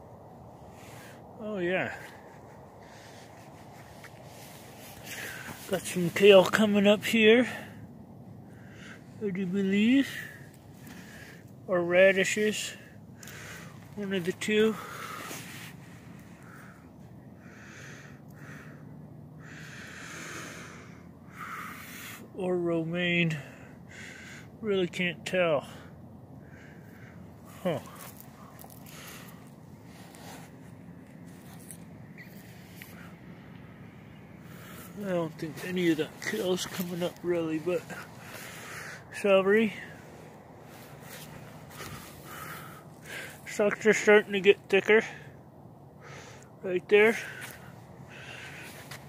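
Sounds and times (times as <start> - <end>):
man breathing: 0.4 - 5.7, 7.5 - 9.2, 10.1 - 11.7, 12.8 - 14.0, 14.7 - 22.3, 23.4 - 24.6, 25.7 - 43.5, 45.2 - 46.6, 47.2 - 49.0
footsteps on garden soil: 35.0 - 38.6.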